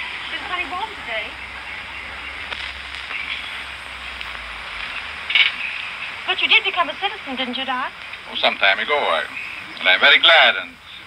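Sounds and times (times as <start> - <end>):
film soundtrack hiss and crackle: 0.0 - 11.0.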